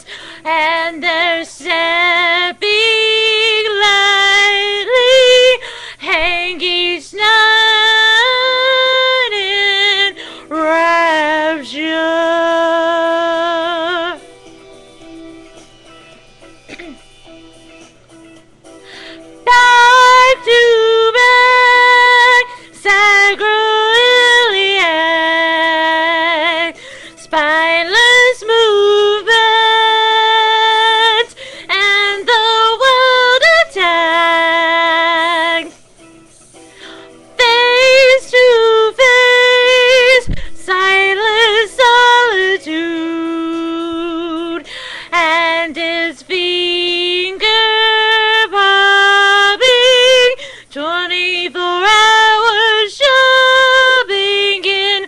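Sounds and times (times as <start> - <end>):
singer breathing: 0.0 - 0.5, 5.6 - 6.0, 10.1 - 10.5, 18.7 - 19.4, 26.7 - 27.3, 31.3 - 31.7, 36.5 - 37.3, 40.2 - 40.6, 44.6 - 45.2, 50.4 - 50.8
woman singing: 0.0 - 14.2, 19.4 - 35.8, 37.4 - 55.0.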